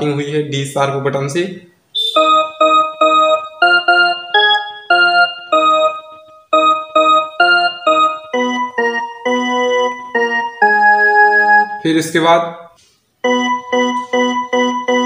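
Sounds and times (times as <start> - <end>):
electronic keyboard slow melody: 2.0 - 11.9, 12.8 - 15.0.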